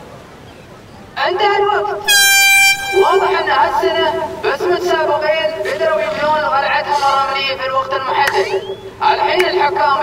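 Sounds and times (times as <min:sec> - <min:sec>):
air horn blast: 0:02.0 - 0:03.5.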